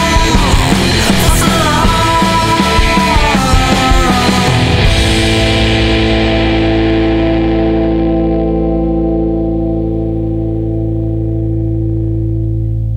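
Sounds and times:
electric guitar chord ringing: 0.0s - 12.9s.

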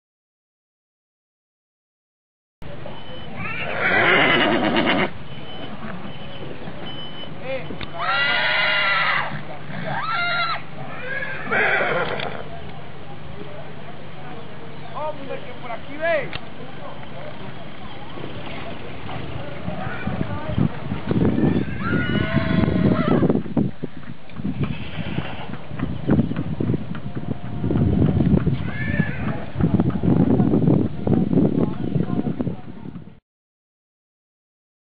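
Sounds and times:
horse whinnying: 3.4s - 5.2s, 7.9s - 12.5s, 21.4s - 23.3s, 24.7s - 25.6s, 28.6s - 29.4s
hooves clopping on paving: 16.2s - 33.1s.

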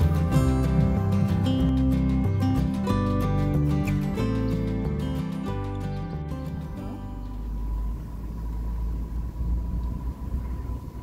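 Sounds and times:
car driving rumble inside cabin: 6.5s - 11.0s.

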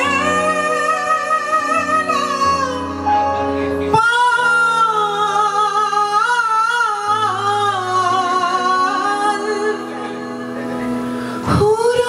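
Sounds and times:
woman singing with vibrato: 0.0s - 3.1s, 3.9s - 10.6s, 11.3s - 12.0s.

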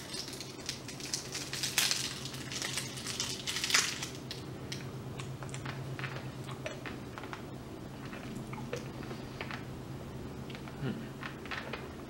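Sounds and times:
candy wrapper crinkling: 0.0s - 7.4s.

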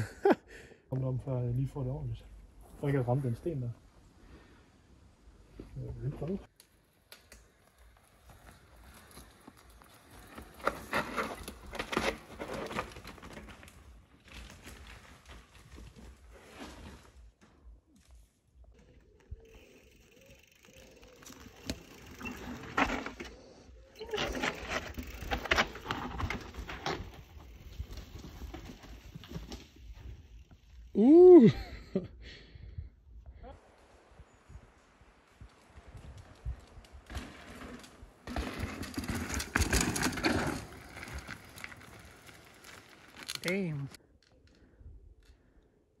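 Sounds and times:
bike tyres crunching over dirt: 2.4s - 31.4s, 33.6s - 44.6s
bike clattering over bumps: 24.1s - 30.7s, 36.9s - 43.3s.

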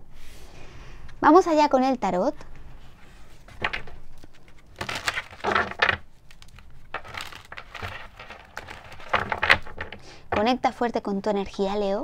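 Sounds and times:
cards being shuffled by hand: 2.6s - 10.4s.

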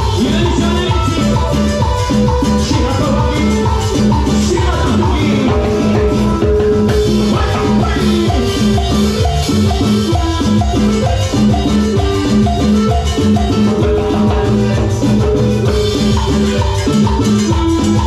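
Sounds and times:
latin dance band playing: 0.0s - 18.0s.

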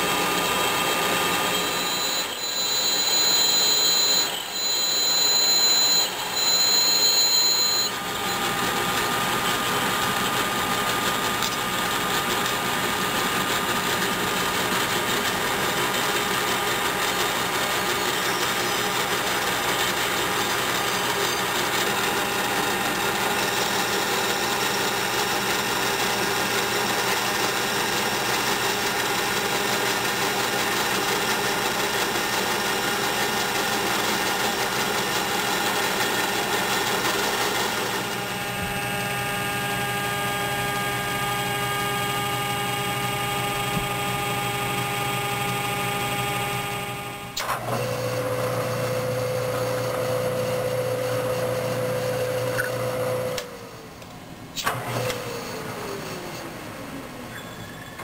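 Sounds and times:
metal lathe running: 0.0s - 53.5s.

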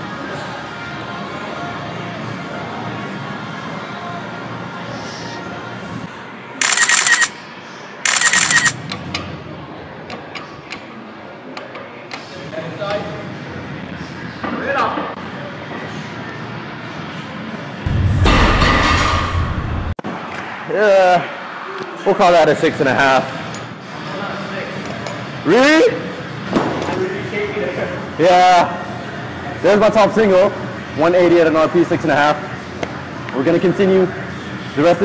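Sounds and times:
faint gym music: 0.0s - 35.0s
loud rush of noise: 17.8s - 20.7s.

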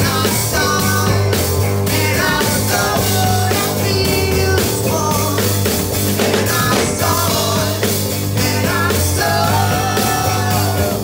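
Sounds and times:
bass guitar: 0.0s - 11.0s
drum kit: 0.0s - 11.0s
electric guitars: 0.0s - 11.0s.

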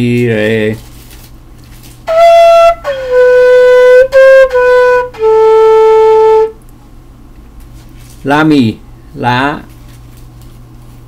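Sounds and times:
flute playing falling phrase: 2.1s - 6.6s.

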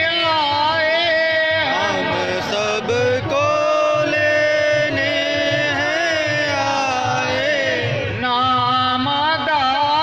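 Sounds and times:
man chanting over loudspeakers: 0.0s - 10.0s.

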